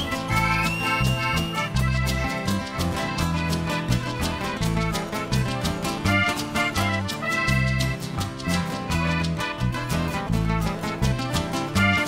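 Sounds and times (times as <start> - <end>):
sustained high melody line: 0.0 - 2.8
electric bass notes: 0.0 - 12.0.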